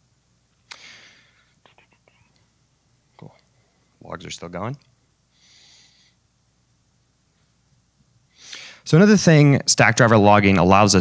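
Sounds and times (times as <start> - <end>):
breath hiss into microphone: 0.7 - 1.6, 8.3 - 8.9.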